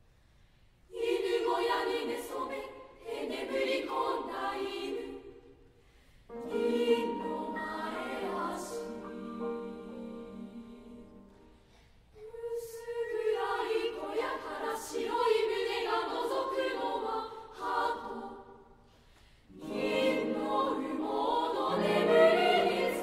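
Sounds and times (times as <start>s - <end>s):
girls' choir singing: 0.9s - 5.6s, 6.3s - 11.4s, 12.2s - 18.8s, 19.5s - 23.0s.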